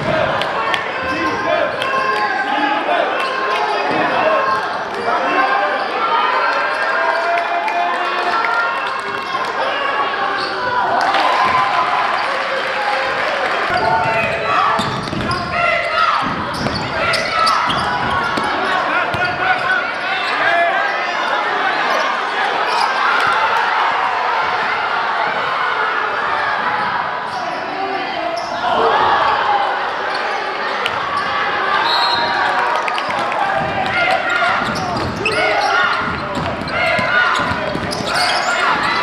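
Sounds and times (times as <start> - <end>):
many overlapping voices: 0.0 - 39.0
basketball bouncing on wooden floor: 13.7 - 15.5, 34.5 - 35.2, 36.0 - 39.0.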